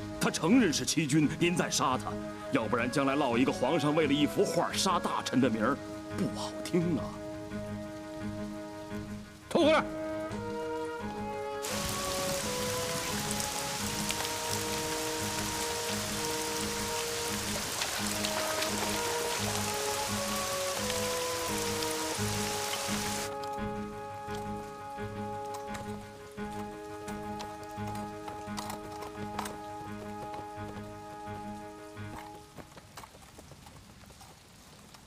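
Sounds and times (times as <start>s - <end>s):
heavy rain pouring: 0.0s - 34.8s.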